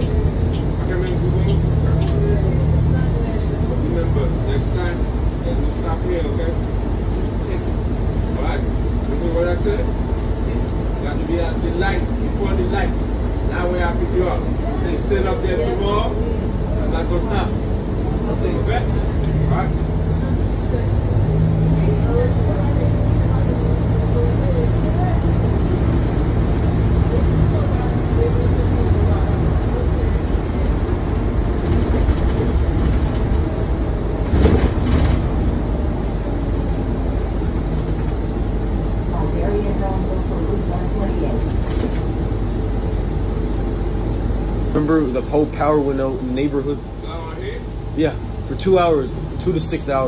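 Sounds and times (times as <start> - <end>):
bus drivetrain and road noise: 0.0 - 50.0
bus jolt knock: 31.5 - 35.7.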